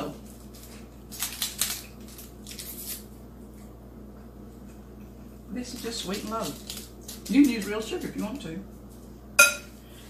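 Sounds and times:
paper packet tearing: 0.4s - 3.1s, 5.7s - 7.6s.

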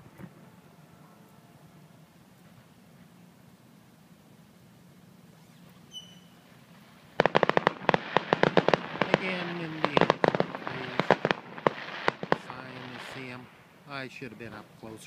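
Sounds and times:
fireworks crackling and popping: 5.2s - 15.0s.

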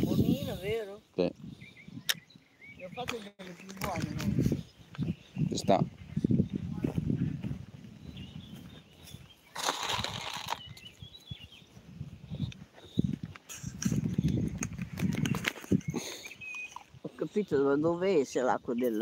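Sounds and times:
footsteps on dirt and gravel: 6.0s - 15.9s.

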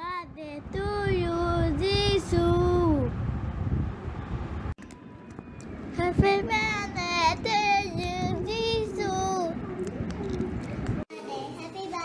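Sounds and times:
child singing: 6.0s - 9.6s, 11.1s - 12.0s.

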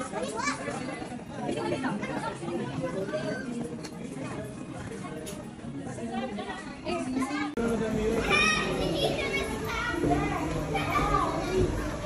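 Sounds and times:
children calling out at play: 8.2s - 12.0s.

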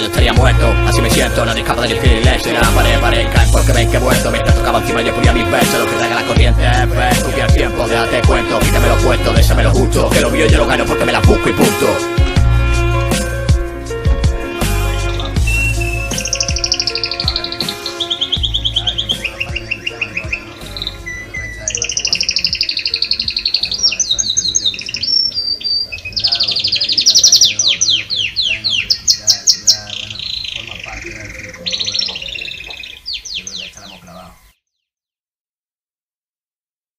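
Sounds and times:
hip-hop beat: 0.0s - 24.8s
birds chirping: 0.0s - 35.0s.

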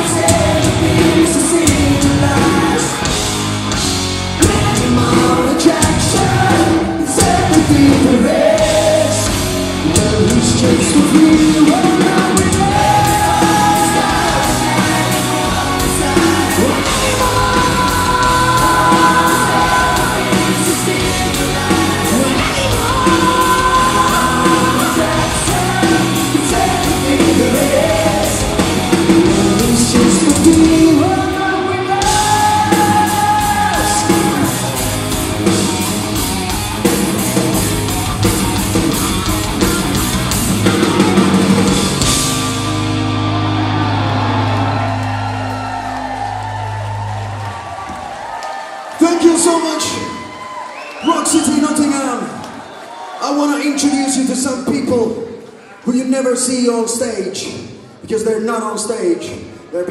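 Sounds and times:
person singing: 0.0s - 3.3s, 4.4s - 34.8s
metal band playing live: 0.0s - 47.9s.

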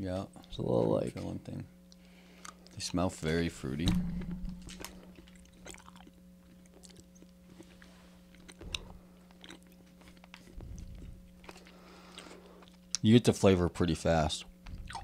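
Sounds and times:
low hum: 3.4s - 11.6s
chewing taffy close up: 4.8s - 13.1s.

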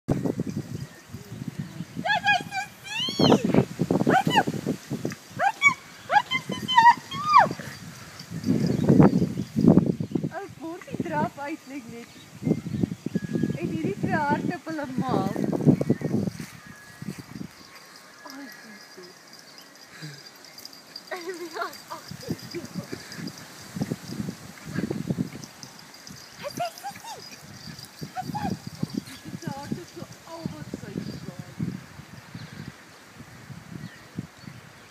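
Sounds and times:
small dogs yapping and yelping: 4.1s - 4.5s, 5.3s - 9.0s, 17.3s - 30.3s.

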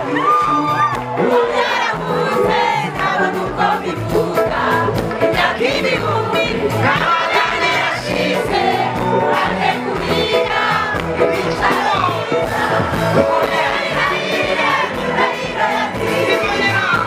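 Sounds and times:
crowd singing gospel music: 0.0s - 17.0s
steady bass line: 0.0s - 17.0s.

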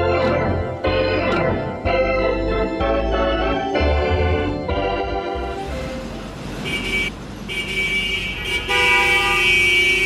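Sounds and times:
vehicle horn held tones: 6.7s - 10.0s.

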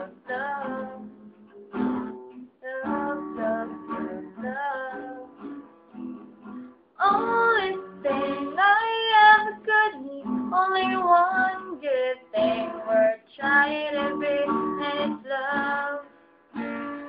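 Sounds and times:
woman singing: 0.0s - 1.2s, 2.6s - 5.4s, 7.0s - 16.1s
acoustic guitar: 0.0s - 17.0s.

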